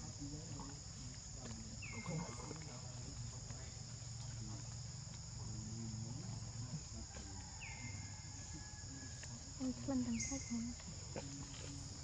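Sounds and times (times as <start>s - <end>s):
insects droning: 0.0s - 12.0s
low voices murmuring: 0.0s - 12.0s.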